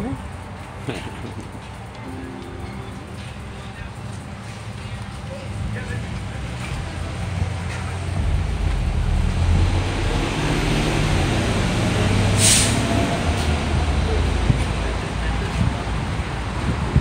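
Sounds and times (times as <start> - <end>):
vehicle engine rumble: 0.0 - 17.0
short sharp hiss: 12.4 - 12.9.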